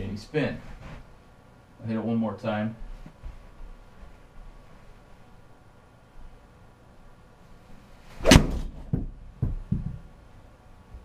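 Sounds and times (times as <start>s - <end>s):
golf club striking ball: 8.2s - 9.1s
dull thumps: 8.2s - 10.1s.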